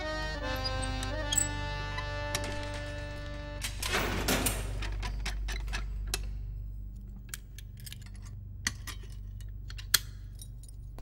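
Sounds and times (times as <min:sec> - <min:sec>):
low steady hum: 0:00.0 - 0:11.0
keys and lock clicking: 0:00.6 - 0:01.6, 0:07.3 - 0:11.0.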